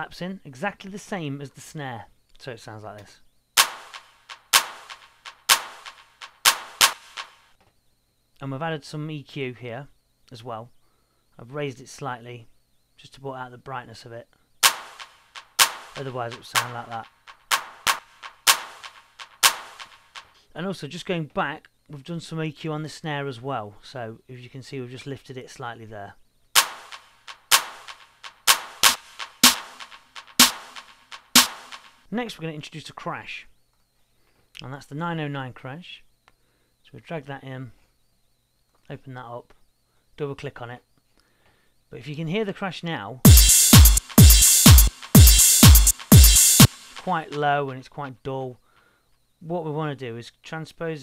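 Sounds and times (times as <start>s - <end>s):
drum machine handclaps and snare: 3.6s - 7.5s, 14.6s - 20.4s, 26.6s - 32.0s, 43.3s - 47.6s.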